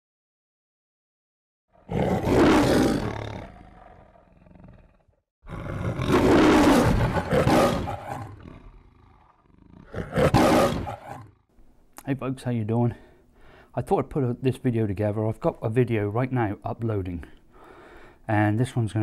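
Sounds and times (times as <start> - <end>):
lion roaring: 1.8 - 11.4.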